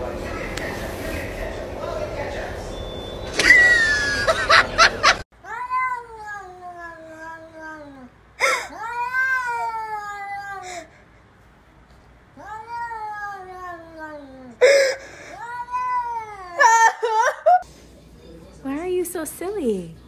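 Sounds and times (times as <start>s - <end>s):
cat yowling: 5.4s - 10.6s, 12.4s - 14.7s, 15.3s - 17.4s.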